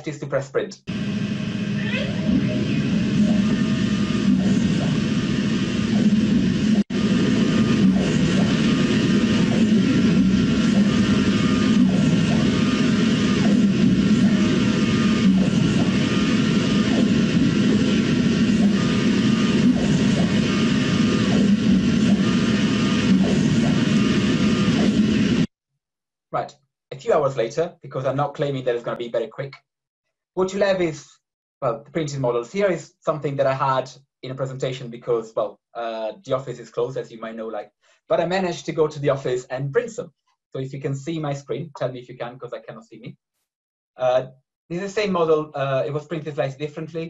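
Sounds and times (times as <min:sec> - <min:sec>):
three-d printer running: 0:02.0 - 0:06.3, 0:07.0 - 0:25.0.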